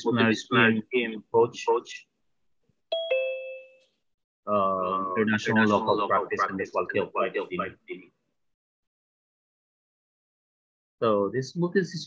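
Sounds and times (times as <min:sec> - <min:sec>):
two-note notification chime: 0:02.9 - 0:03.9.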